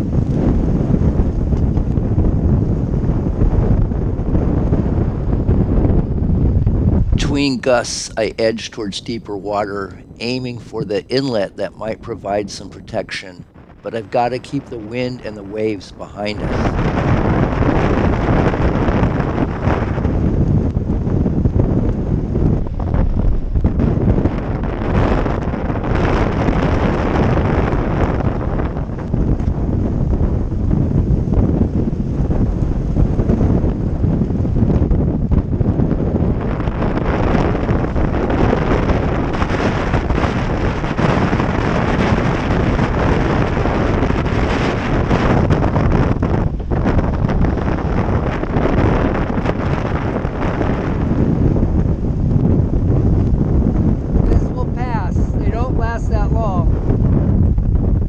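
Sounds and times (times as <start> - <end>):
wind buffeting microphone: 0.0 - 58.0
rough water rushing: 7.2 - 13.2.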